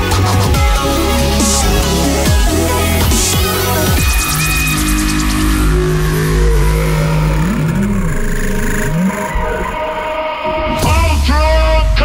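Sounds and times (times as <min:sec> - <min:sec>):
electronic dance music: 0:00.0 - 0:11.9
wobble bass synth: 0:00.0 - 0:12.0.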